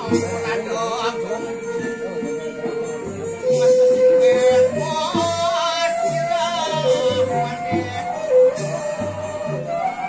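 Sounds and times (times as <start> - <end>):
wavering voice singing: 0.0 - 9.7
bamboo flute tones: 0.0 - 10.0.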